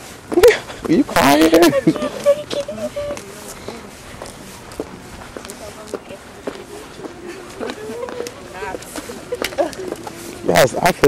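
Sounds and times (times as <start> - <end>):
footsteps on concrete: 0.0 - 11.0
faint talking voices: 0.3 - 11.0.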